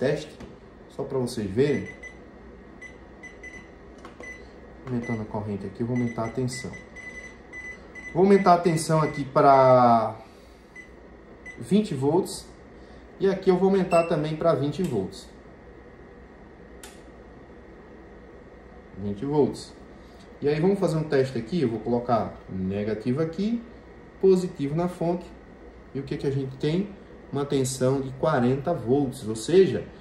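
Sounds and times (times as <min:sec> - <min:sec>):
low steady hum: 0:00.0 - 0:30.0.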